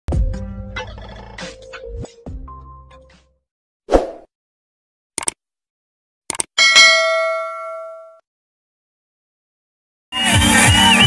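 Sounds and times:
bright bell ding: 6.6 - 8.2.

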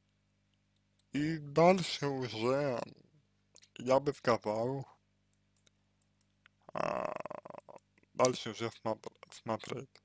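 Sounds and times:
faint clicks: 5.3 - 6.6
man's rough throat noise: 6.7 - 7.9.

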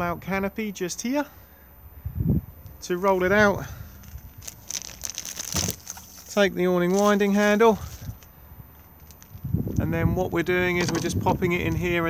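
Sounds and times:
rustling crinkling handling noises: 3.8 - 9.5.

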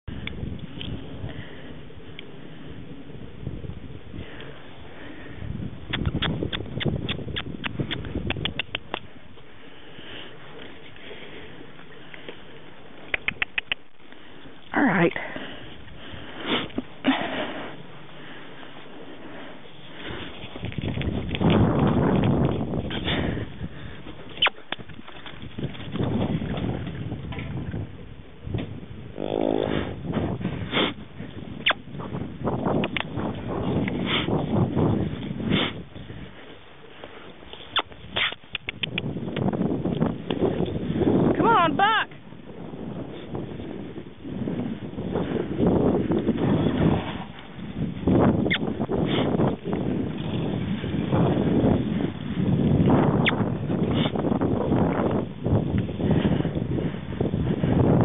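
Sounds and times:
sharp clicks: 5.9 - 9.1, 13.0 - 14.0, 32.8 - 33.1, 37.7 - 39.5
horse tack noise: 5.9 - 9.5, 11.7 - 14.7, 19.9 - 23.2, 36.4 - 40.8
horse hoofbeats on dirt: 20.1 - 27.8, 44.7 - 55.9.

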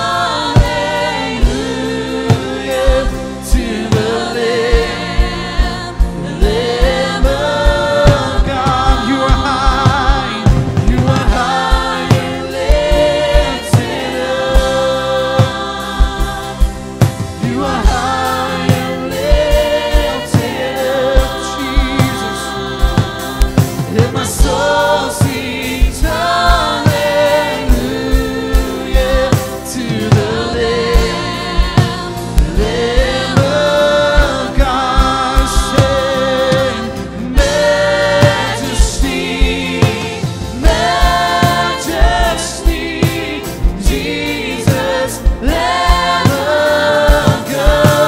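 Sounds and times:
guitar: 0.0 - 48.0
keyboard: 0.0 - 48.0
steady beat: 0.0 - 48.0
worship music with group singing: 0.0 - 48.0.

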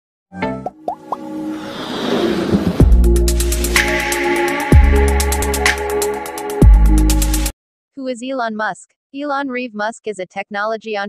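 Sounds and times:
short rising pops: 0.9 - 4.1
synth chord: 1.0 - 7.5
whoosh: 1.2 - 4.3.

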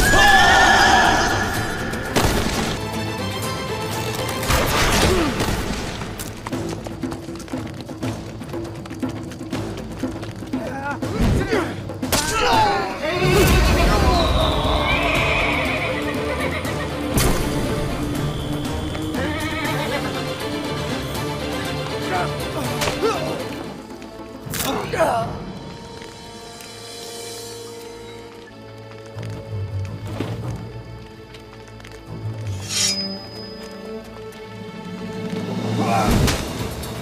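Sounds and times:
background music: 0.0 - 37.0
horse whinnying: 14.8 - 17.1, 19.2 - 20.2.

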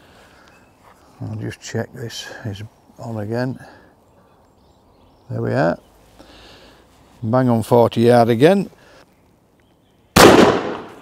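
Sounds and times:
shotgun shot: 10.2 - 11.0.

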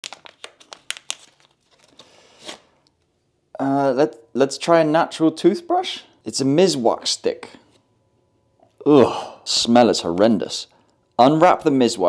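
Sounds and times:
plastic wrapper crinkling: 0.0 - 2.6.

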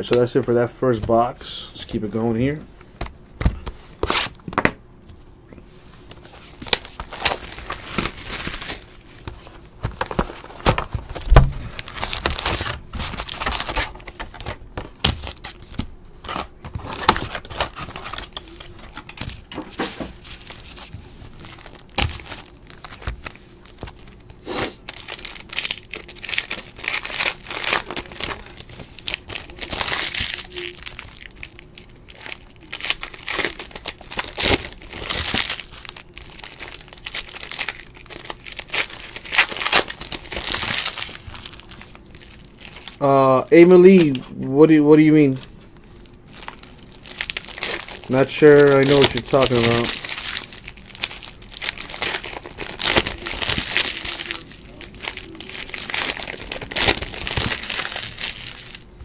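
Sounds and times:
foil wrappers crinkling and tearing: 6.1 - 59.0.

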